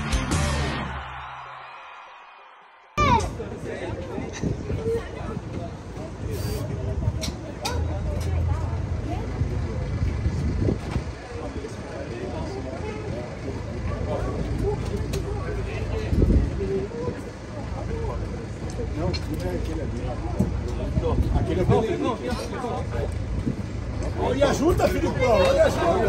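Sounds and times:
bus engine idling: 3.0s - 26.0s
people chattering: 3.0s - 26.0s.

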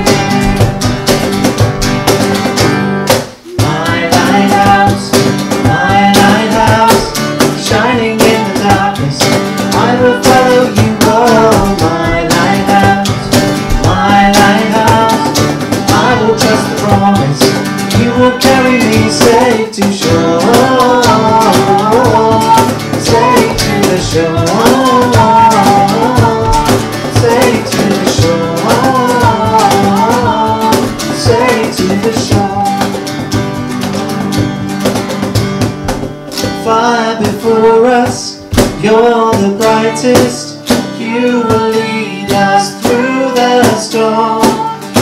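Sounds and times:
voices singing: 0.0s - 1.0s, 3.4s - 33.2s, 36.6s - 45.0s
cajon beat: 0.0s - 45.0s
strummed acoustic guitar: 0.0s - 45.0s.

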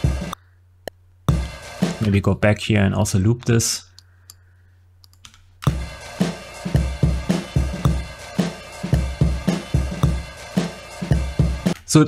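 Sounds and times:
drum loop: 0.0s - 0.4s, 1.3s - 2.4s, 5.6s - 12.0s
faint clicks: 5.0s - 5.4s.

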